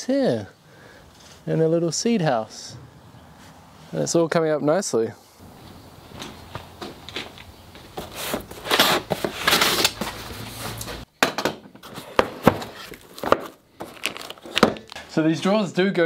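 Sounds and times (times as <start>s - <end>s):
shuffling and rustling: 5.4s - 11.1s.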